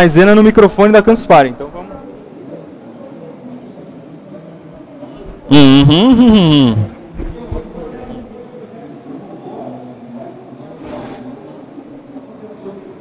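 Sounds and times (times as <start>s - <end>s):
faint crowd murmur: 0.0s - 13.0s.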